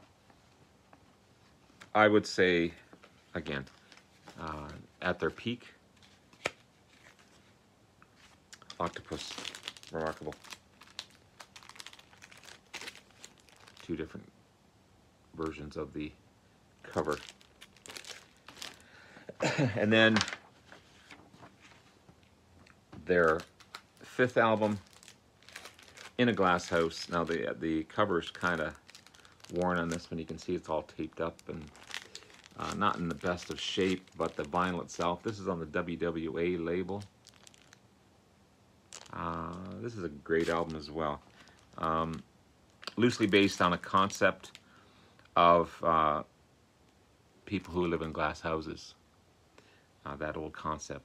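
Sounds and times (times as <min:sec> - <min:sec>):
plastic sleeve crinkling: 0:01.4 - 0:07.5, 0:08.1 - 0:14.2, 0:16.8 - 0:37.8, 0:38.9 - 0:44.6.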